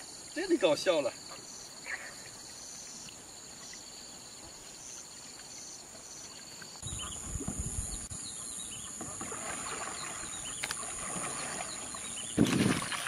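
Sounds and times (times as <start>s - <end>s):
higher insect chirp: 0.0s - 13.0s
insects trilling: 0.0s - 13.0s.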